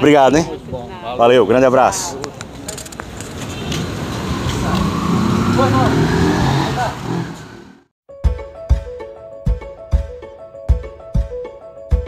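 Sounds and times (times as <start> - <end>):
vehicle driving past: 3.4 - 7.9.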